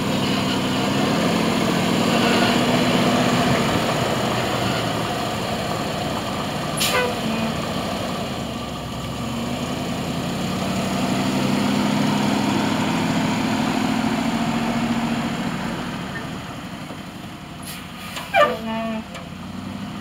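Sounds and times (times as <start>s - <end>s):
truck engine driving past: 0.0s - 20.0s
short sharp hiss: 17.6s - 18.3s.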